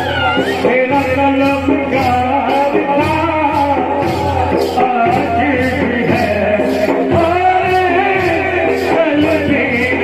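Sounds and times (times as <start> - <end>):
men singing: 0.0 - 10.0
percussive beats: 0.0 - 10.0.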